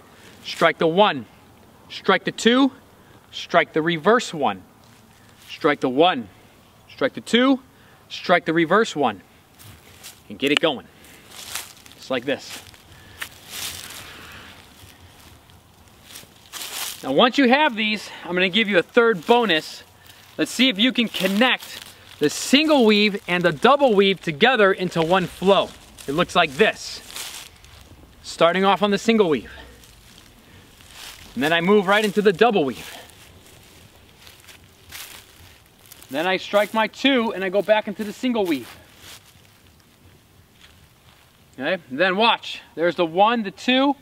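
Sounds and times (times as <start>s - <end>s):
footsteps crunching on dry leaves: 4.8s - 5.5s, 9.5s - 41.6s.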